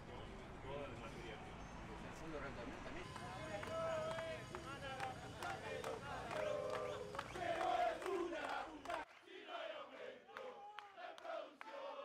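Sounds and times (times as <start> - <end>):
men shouting a chant: 3.3 - 12.0.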